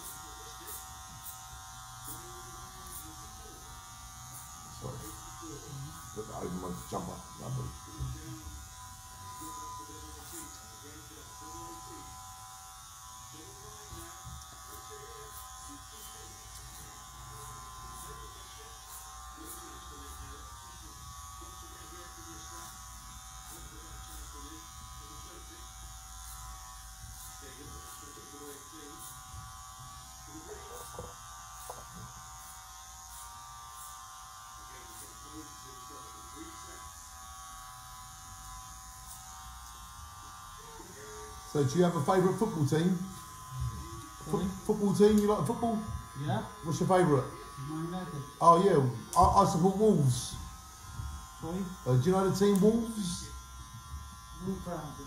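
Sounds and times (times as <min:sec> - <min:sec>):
electric hair clippers buzzing: 0:00.0 - 0:55.0.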